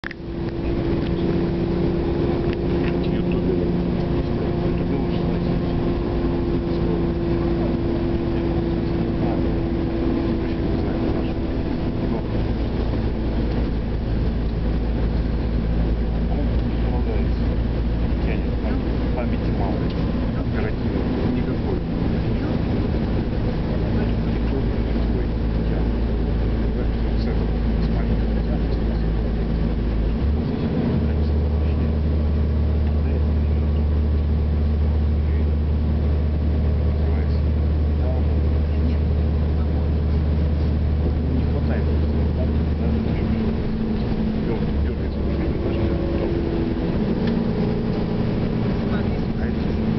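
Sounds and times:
vehicle engine and road drone: 0.0s - 49.9s.

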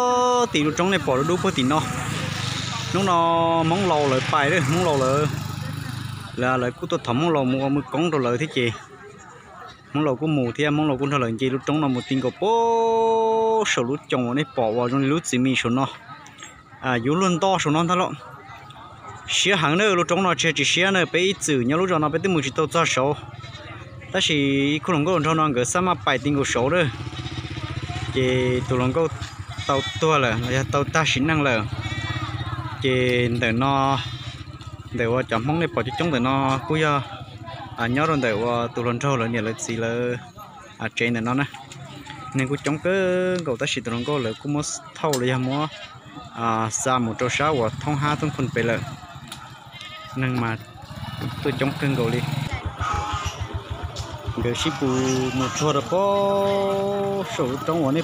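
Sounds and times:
man talking: 0.0s - 5.5s, 34.9s - 37.2s, 37.8s - 41.6s, 42.3s - 49.0s, 51.2s - 52.6s, 54.3s - 58.0s
outdoor background noise: 0.0s - 58.0s.

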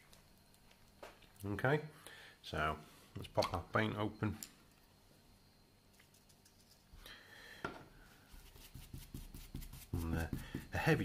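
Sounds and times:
brush scratching on paper towel: 8.3s - 11.0s.

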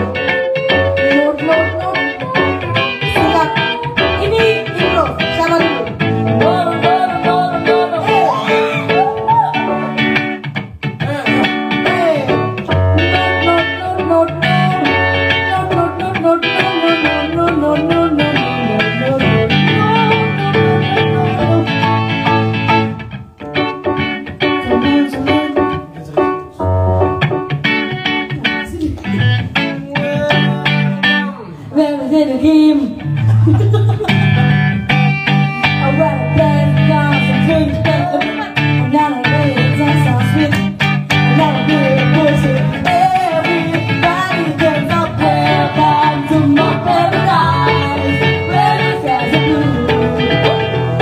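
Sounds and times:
woman singing into microphone: 0.0s - 9.9s, 12.9s - 22.4s, 24.6s - 25.9s, 28.6s - 33.2s, 35.5s - 51.0s
low bass notes: 0.0s - 16.4s, 33.0s - 51.0s
guitar and keyboard playing: 0.0s - 51.0s.

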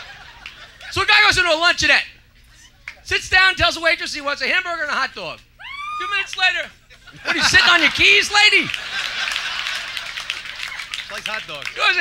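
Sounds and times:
audience laughing: 0.0s - 1.0s, 6.9s - 12.0s
audience applauding: 7.6s - 12.0s.

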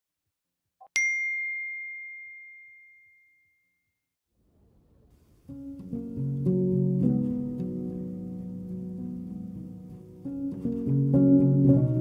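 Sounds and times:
bright bell-like ding: 1.0s - 3.6s.

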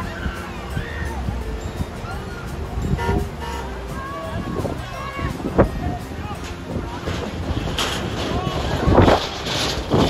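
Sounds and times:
faint voices calling: 0.0s - 10.0s
rushing river whitewater: 0.0s - 10.0s
wind buffeting microphone: 0.0s - 10.0s.

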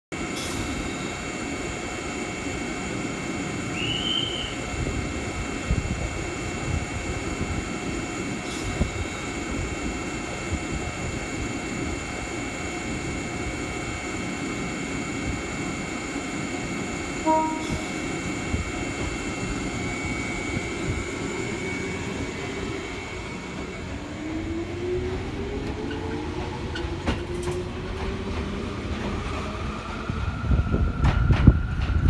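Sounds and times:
train equipment high whine: 0.1s - 32.0s.

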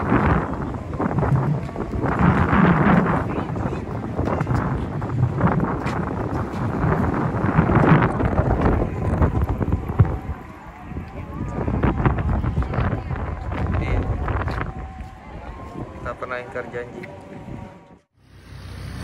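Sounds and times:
wind buffeting microphone: 0.0s - 18.1s
people's voices in background: 8.2s - 18.0s.

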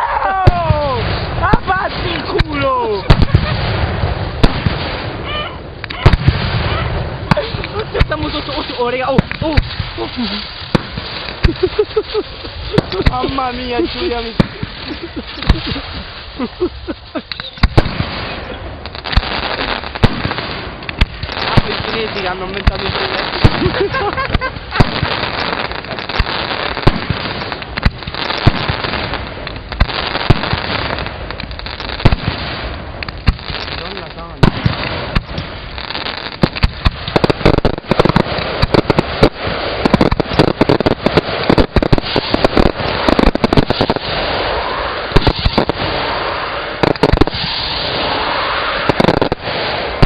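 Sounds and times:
firework crackling: 0.0s - 50.0s
firework shells bursting: 0.5s - 50.0s.

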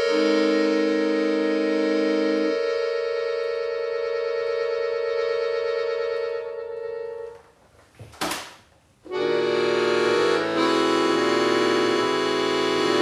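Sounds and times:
accordion chords: 0.0s - 7.5s, 9.1s - 13.0s.

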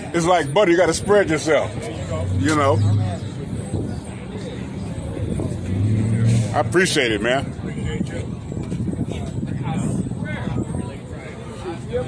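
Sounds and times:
faint talk of people: 0.0s - 12.0s.

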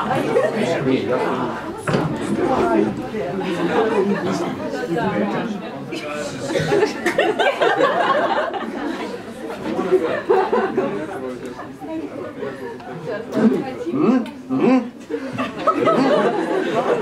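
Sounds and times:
people chattering and laughing: 0.0s - 17.0s.

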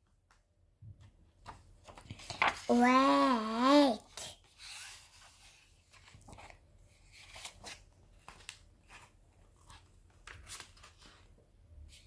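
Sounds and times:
book page turning: 1.4s - 2.9s, 4.1s - 11.3s
soft paper brushing: 4.2s - 12.0s.

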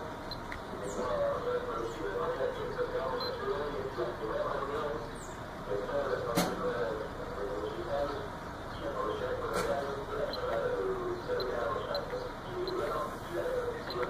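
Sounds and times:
indistinct background voices: 0.6s - 14.0s.

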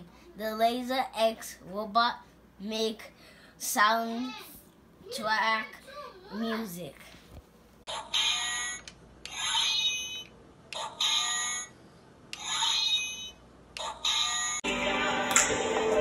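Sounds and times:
fuller music: 14.6s - 16.0s.

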